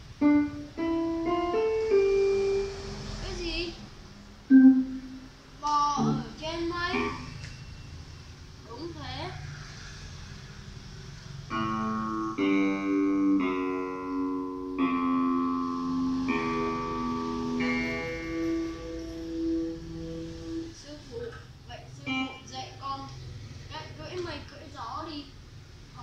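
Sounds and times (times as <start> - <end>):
electronic keyboard held notes: 0.0 - 3.0, 4.5 - 5.3, 5.9 - 7.5, 11.5 - 20.8, 22.0 - 22.6.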